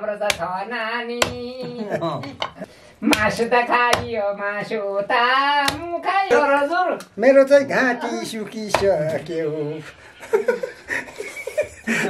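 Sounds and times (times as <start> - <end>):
knife chopping on wooden block: 0.2 - 0.5, 1.2 - 1.5, 2.4 - 4.2, 5.6 - 5.9.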